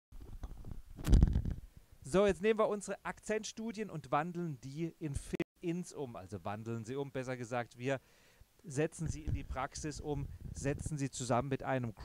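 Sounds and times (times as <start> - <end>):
microphone handling noise: 0.1 - 1.9, 9.0 - 11.0.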